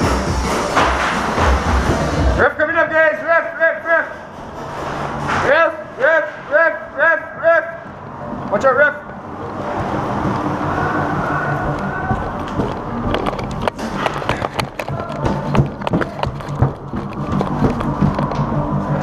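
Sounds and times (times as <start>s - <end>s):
music playing: 0.0s - 19.0s.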